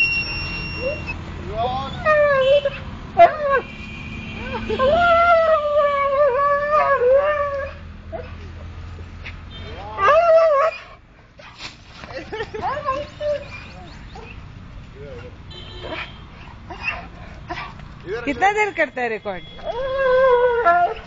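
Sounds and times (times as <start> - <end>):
dog whining and yelping: 10.0 - 11.6, 12.6 - 14.4, 15.9 - 17.8, 19.6 - 21.0.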